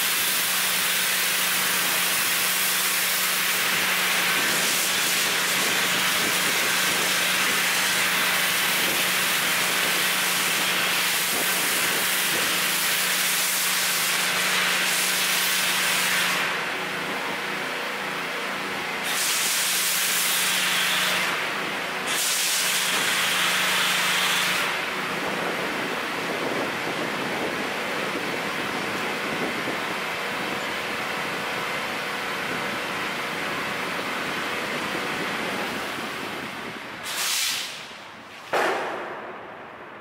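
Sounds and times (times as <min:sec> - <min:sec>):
foam cannon spraying: 0:00.0 - 0:39.7
steady hiss: 0:19.0 - 0:21.4, 0:33.9 - 0:40.0
loud hit: 0:38.5 - 0:40.0.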